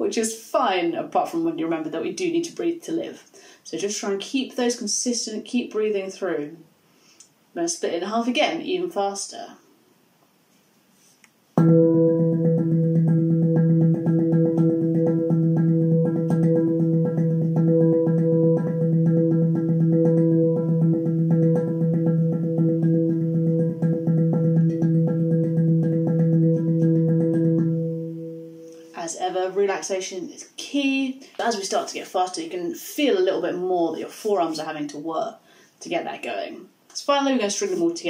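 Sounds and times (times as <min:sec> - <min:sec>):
handpan fast roll: 0:11.6 - 0:28.7.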